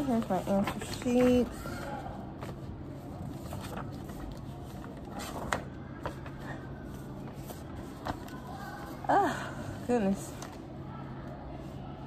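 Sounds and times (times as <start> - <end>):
paper rustling: 0.0 - 9.0
low room hum: 0.0 - 12.0.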